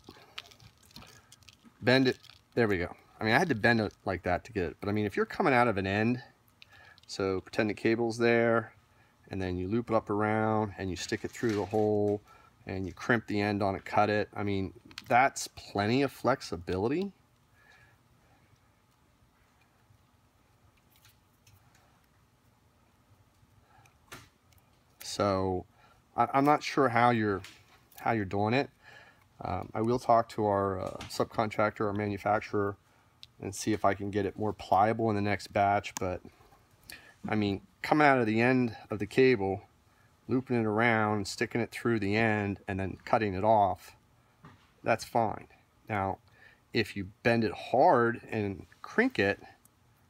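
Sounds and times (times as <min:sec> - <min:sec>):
clicks and rustles of metal wire: 0:00.0 - 0:04.1, 0:11.0 - 0:12.2, 0:20.7 - 0:22.2
person speaking: 0:00.0 - 0:17.2, 0:25.0 - 0:28.8, 0:29.4 - 0:39.7, 0:44.8 - 0:49.6.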